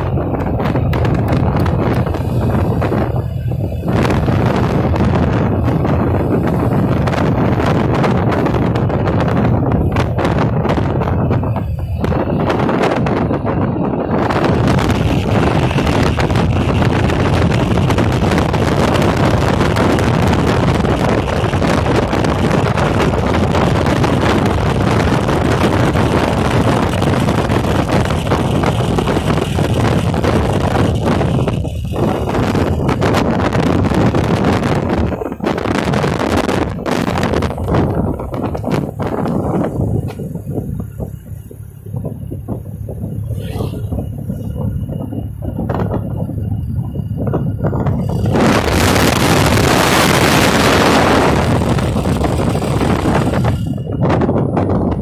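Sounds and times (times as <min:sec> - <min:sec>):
motorcycle engine: 0:00.0 - 0:55.0
road noise: 0:00.0 - 0:55.0
wind rushing over microphone: 0:00.0 - 0:55.0.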